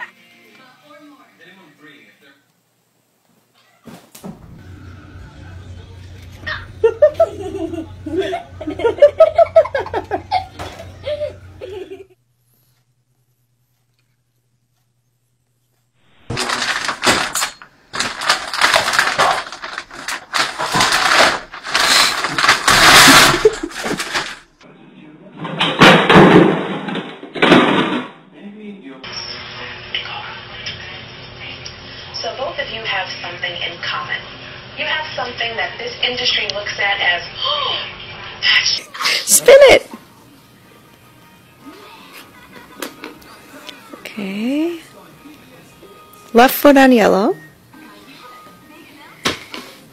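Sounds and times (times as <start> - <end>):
faint background music: 0.0 - 2.5, 3.8 - 9.4, 24.6 - 26.3, 28.0 - 49.9
paper bag crinkling and rustling: 16.2 - 24.6.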